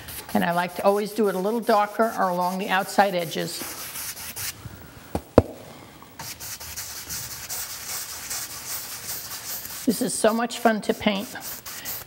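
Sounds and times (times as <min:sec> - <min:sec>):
paintbrush scrubbing on canvas: 0:00.0 - 0:04.6, 0:06.2 - 0:10.4, 0:11.0 - 0:12.0
sharp knocks: 0:05.1 - 0:05.8.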